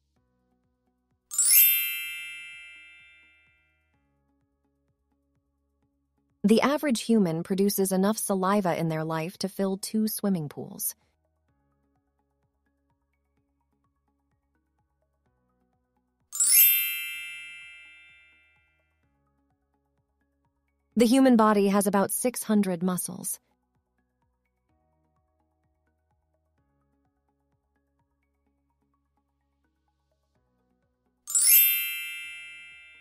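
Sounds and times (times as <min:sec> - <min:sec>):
bright bell-like chime: 0:01.3 - 0:03.6, 0:16.4 - 0:18.6, 0:31.3 - 0:33.0.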